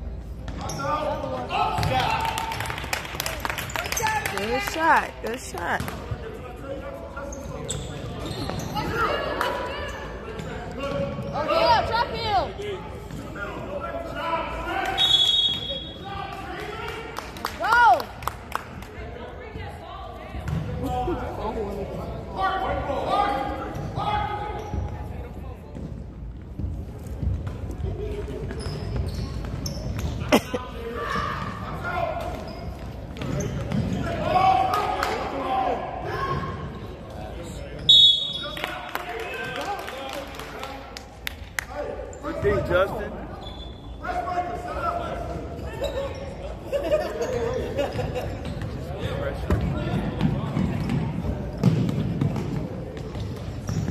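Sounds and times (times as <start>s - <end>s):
sneakers squeaking: 0.2s - 2.0s, 7.2s - 12.4s, 20.3s - 21.4s, 23.6s - 34.4s, 42.1s - 44.4s, 45.1s - 53.9s
crowd chatter echoing: 4.0s - 7.1s
whistle blowing: 15.0s - 16.0s, 37.9s - 38.6s
basketball bouncing: 49.5s - 53.9s.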